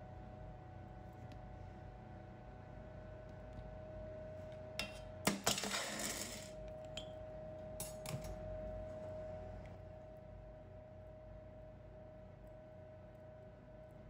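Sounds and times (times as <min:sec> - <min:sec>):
faint steady hum: 0:00.0 - 0:14.0.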